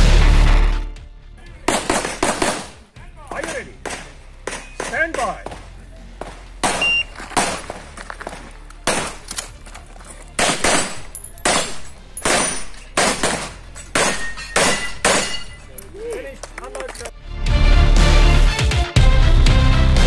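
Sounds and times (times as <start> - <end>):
pistol shots with echo: 1.7 - 2.8, 6.6 - 7.9, 8.8 - 9.4, 10.4 - 15.6.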